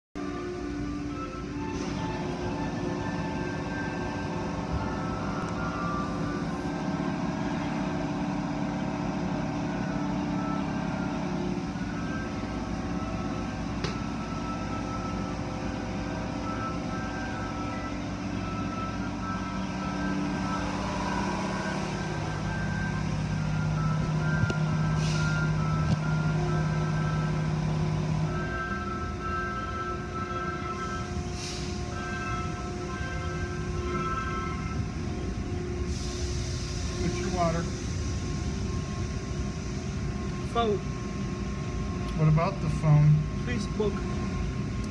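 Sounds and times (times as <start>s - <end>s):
car wash motor drone: 0.2s - 44.9s.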